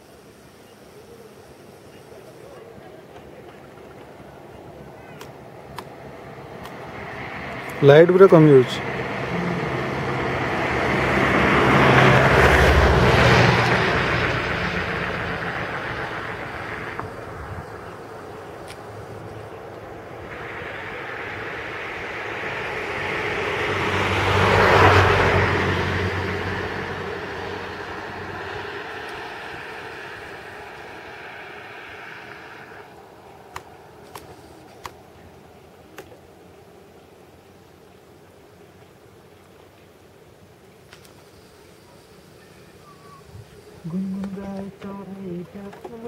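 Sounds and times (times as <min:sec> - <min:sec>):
vehicles passing by: 0:00.0 - 0:46.0.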